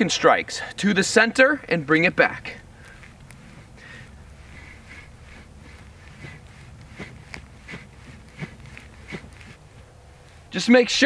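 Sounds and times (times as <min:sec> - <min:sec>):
low background hum: 0:00.0 - 0:11.0
sticks swishing: 0:02.6 - 0:10.5
sticks clicking: 0:02.8 - 0:10.4.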